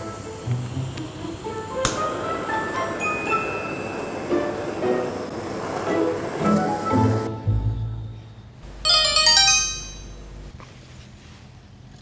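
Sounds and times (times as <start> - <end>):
phone ringtone: 8.6 - 10.5.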